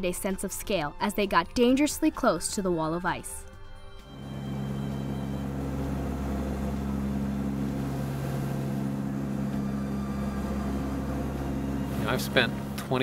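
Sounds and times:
turboprop engines droning: 4.0 - 13.0.

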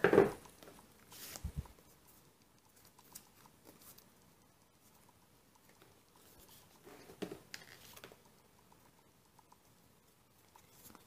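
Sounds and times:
paper pages rustling and turning: 1.1 - 1.6, 6.4 - 8.2.

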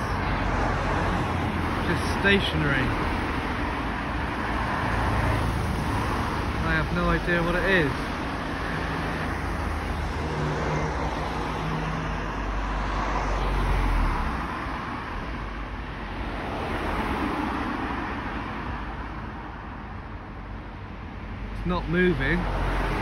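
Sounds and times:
passing cars rushing: 0.0 - 23.0.

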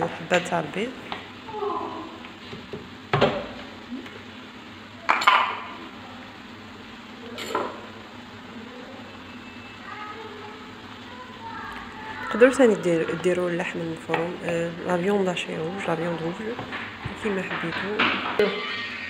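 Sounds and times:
faint sizzle: 0.0 - 19.0
wooden spoon stirring in pan: 2.1 - 19.0.

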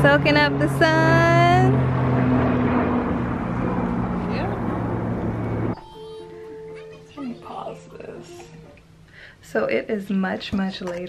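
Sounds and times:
motor drone with rushing noise: 0.0 - 5.8.

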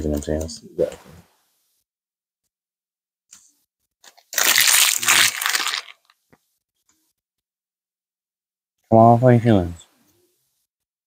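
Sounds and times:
wrapper crinkling: 4.0 - 6.2.

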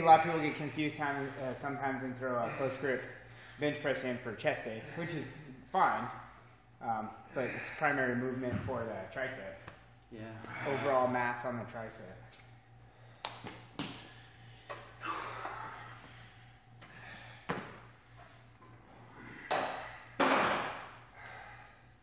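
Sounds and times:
gym equipment knocking and clanking: 19.4 - 20.9.

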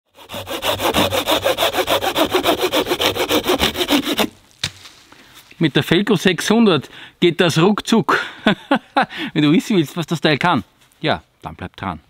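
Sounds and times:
hand saw cutting branch: 0.1 - 4.8.

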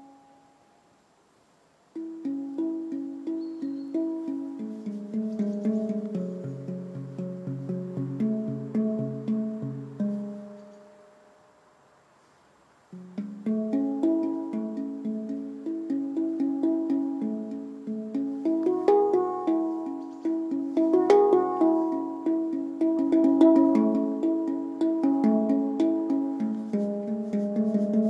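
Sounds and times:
handpan played with fingers: 1.9 - 11.1, 12.9 - 28.0.

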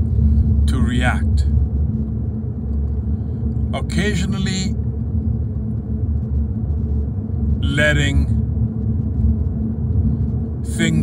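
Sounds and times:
car engine rumble: 0.0 - 11.0
road noise inside car: 0.0 - 11.0.

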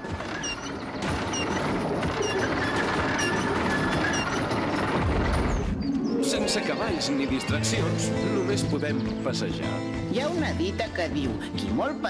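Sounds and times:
winch chain rattling: 0.0 - 5.7
short squeak: 0.3 - 5.7.

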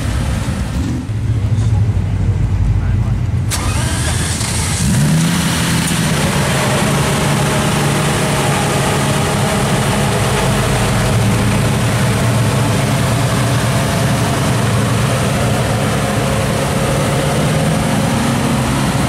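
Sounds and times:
car engine starting and idling: 0.0 - 19.0.

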